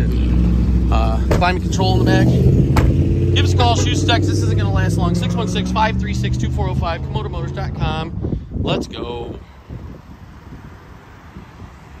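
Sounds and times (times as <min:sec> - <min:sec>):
wind buffeting microphone: 0:00.3 - 0:12.0.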